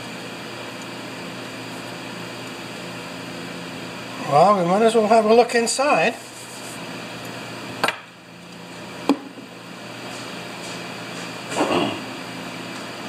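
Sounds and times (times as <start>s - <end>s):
steady shop hum: 0.0s - 13.0s.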